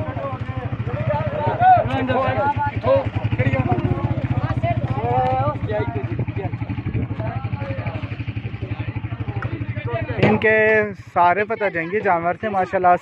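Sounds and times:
men calling and talking: 0:00.0 - 0:13.0
vehicle engine idling: 0:00.0 - 0:13.0.

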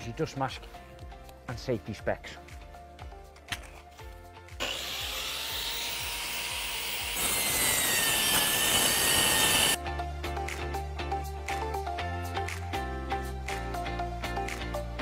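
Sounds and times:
mitre saw whine: 0:04.6 - 0:09.8
saw blade cutting plank: 0:04.6 - 0:09.8.

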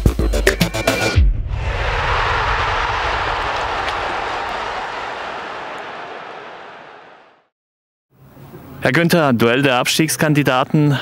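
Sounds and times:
airy rushing sound effect: 0:01.5 - 0:05.8.

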